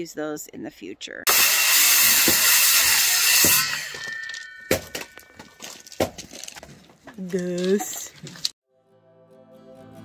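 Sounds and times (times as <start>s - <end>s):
power saw cutting wood: 1.3s - 4.4s.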